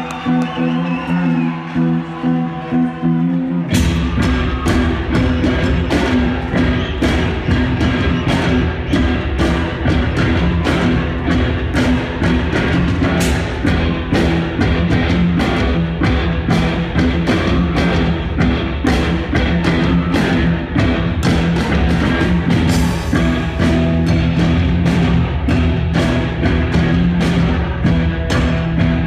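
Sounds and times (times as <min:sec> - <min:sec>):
live rock band: 0:00.0 - 0:29.0.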